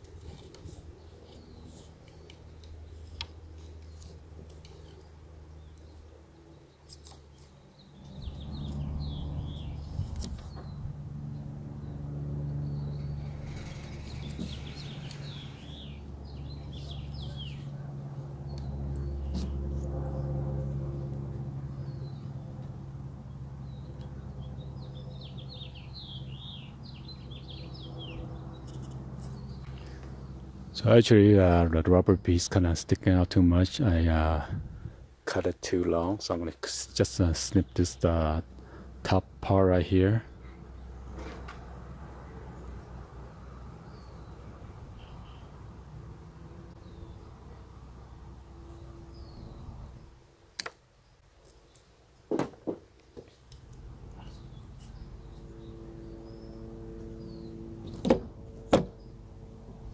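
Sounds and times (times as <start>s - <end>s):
low mechanical hum: 0.0s - 59.9s
small birds chirping: 0.3s - 19.6s, 21.7s - 30.9s, 43.8s - 45.7s, 46.6s - 50.2s, 53.2s - 58.0s.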